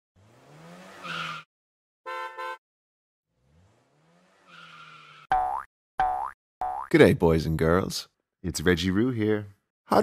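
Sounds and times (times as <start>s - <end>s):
cartoon springy boing: 5.3s - 6.9s.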